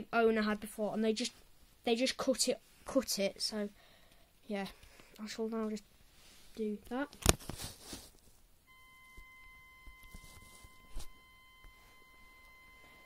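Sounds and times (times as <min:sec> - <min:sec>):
faint steady high tone: 0:08.6 - 0:13.0.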